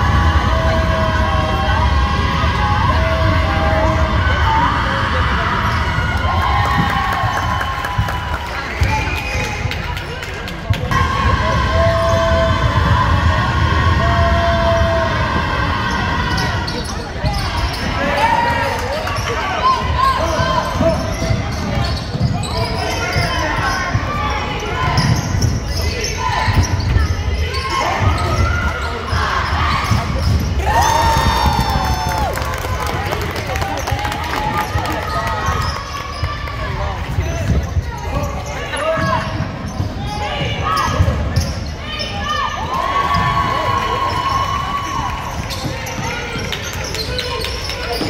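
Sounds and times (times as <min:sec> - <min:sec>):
chatter and calls of people: 0:00.0 - 0:48.0.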